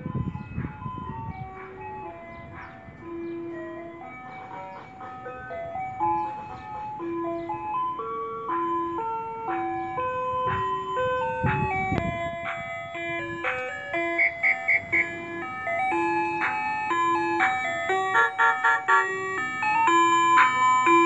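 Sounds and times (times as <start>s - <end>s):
ice cream van chime tune: 0.0s - 21.0s.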